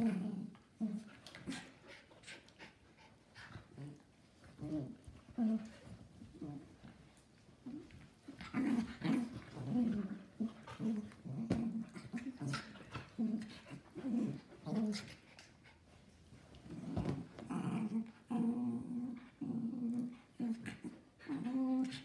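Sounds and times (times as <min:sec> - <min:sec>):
dogs growling: 0:00.0 - 0:06.8, 0:07.6 - 0:15.5, 0:16.6 - 0:22.0.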